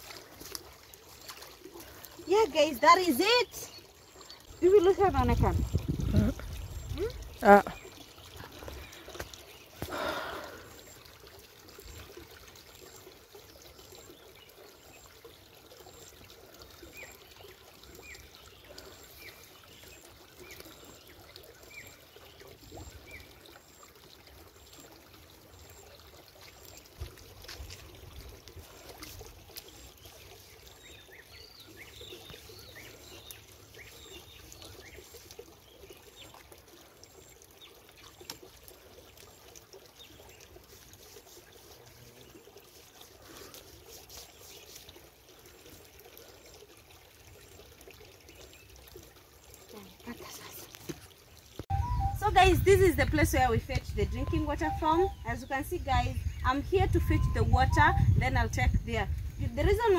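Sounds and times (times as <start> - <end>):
shallow river trickling: 0.0 - 59.9
short high chirps: 51.7 - 52.3, 54.1 - 55.2.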